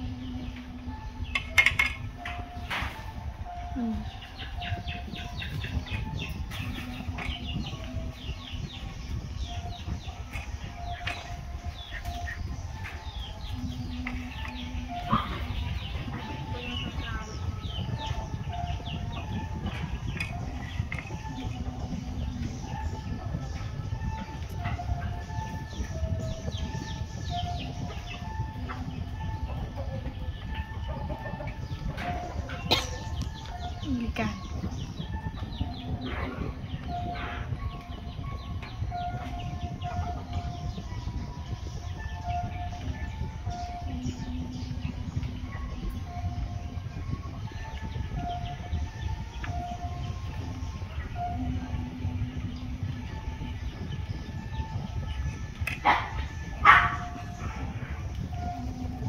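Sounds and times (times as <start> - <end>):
birds calling: 0.0 - 59.0
steady low rumble: 0.0 - 59.0.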